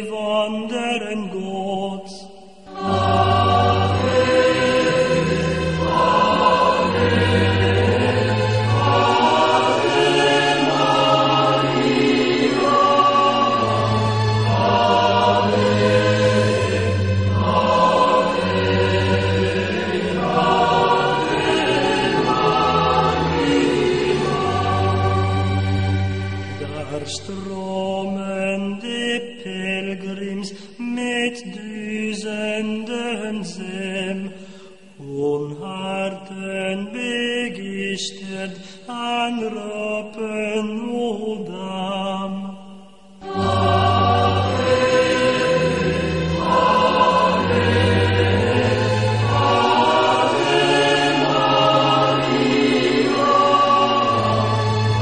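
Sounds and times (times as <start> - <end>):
choral chanting: 0.0 - 30.4, 31.0 - 34.3, 35.0 - 55.0.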